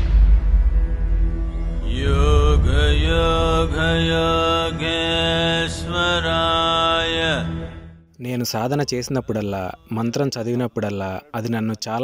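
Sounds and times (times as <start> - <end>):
steady low drone: 0.0 - 8.0
chanted mantra in long notes: 1.8 - 7.7.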